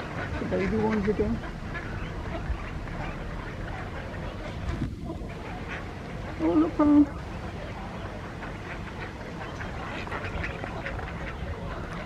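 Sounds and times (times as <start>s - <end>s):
ducks quacking: 0.0s - 12.0s
low steady rumble: 0.0s - 12.0s.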